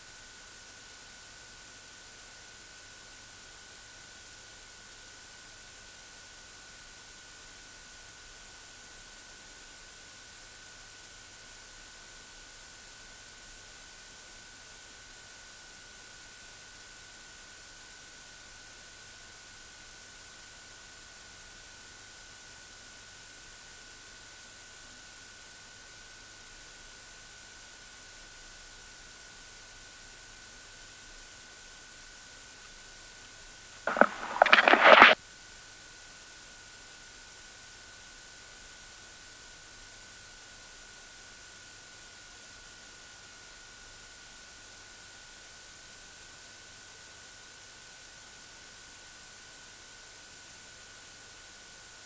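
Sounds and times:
loud crackly burst: 33.9s - 35.2s
steady radio hiss: 33.9s - 35.2s.

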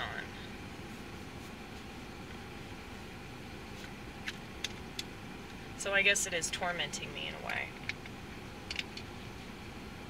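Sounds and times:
low rumble inside car cabin: 0.0s - 10.0s.

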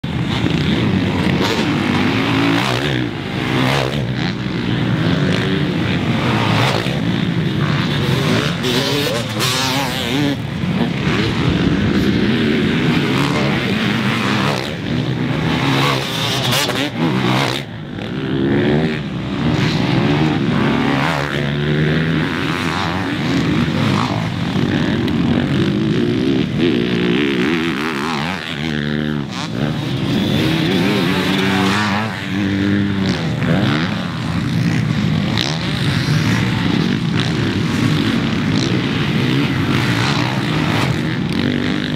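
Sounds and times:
motocross bikes revving past: 0.0s - 41.9s.

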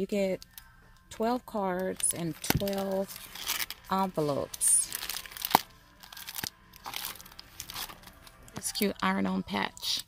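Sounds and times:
cellophane crinkling: 1.8s - 8.8s.

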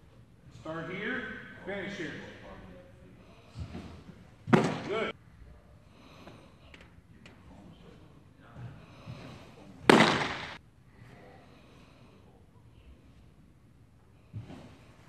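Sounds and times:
baseball smacking into mitt: 4.5s - 5.1s, 9.8s - 10.6s.

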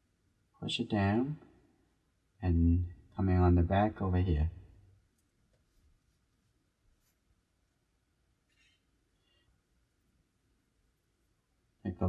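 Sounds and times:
brush scratching on paper: 5.5s - 7.4s.

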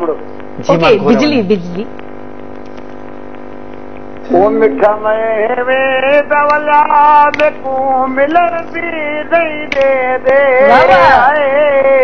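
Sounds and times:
electrical mains hum: 0.0s - 12.0s
man singing: 4.3s - 12.0s.

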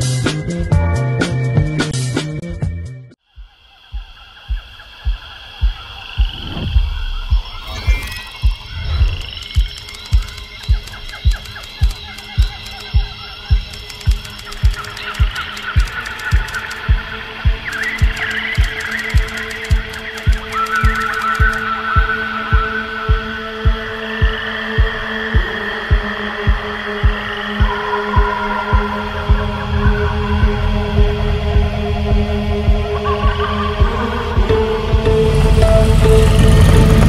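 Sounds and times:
frogs: 3.2s - 37.0s
insects chirring: 3.2s - 37.0s
low thudding pulse: 3.4s - 37.0s.

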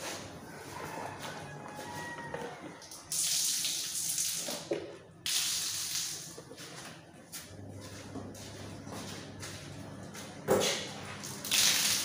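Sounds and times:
water gushing from a tap: 2.9s - 4.7s, 11.2s - 12.0s.

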